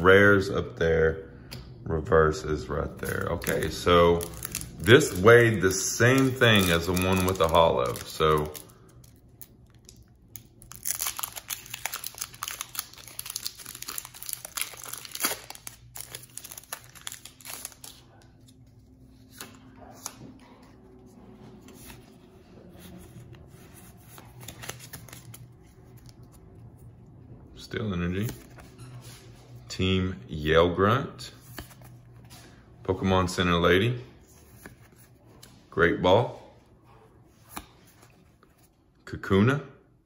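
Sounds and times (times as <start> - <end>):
foil wrapper tearing and crinkling: 3.1 - 18.0.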